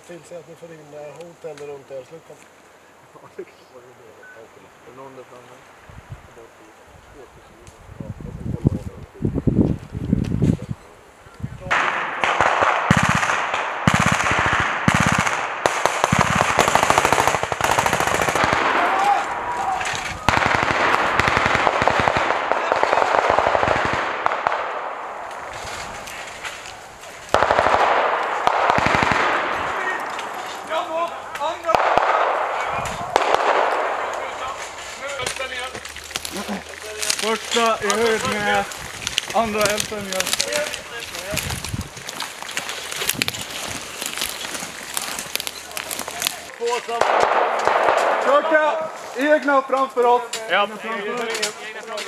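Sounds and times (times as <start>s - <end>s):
automatic rifle fire: 11.7s - 19.3s, 20.2s - 25.2s, 27.3s - 30.7s, 31.6s - 34.4s, 46.9s - 48.6s
people shouting: 17.2s - 23.2s.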